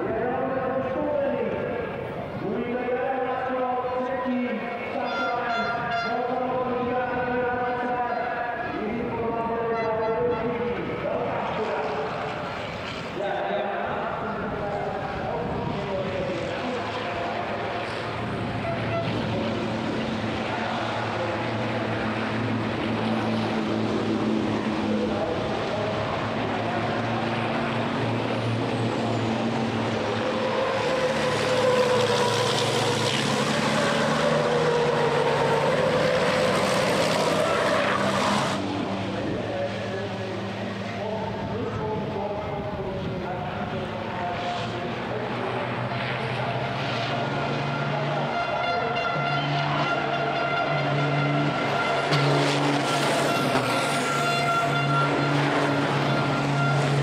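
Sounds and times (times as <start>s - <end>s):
racing truck engines: 0.0s - 57.0s.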